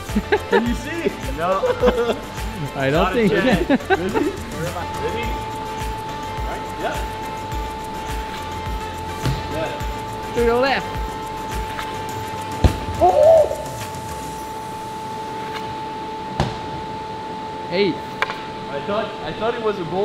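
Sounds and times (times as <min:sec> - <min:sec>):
suspense music with drone: 0:00.0 - 0:20.0.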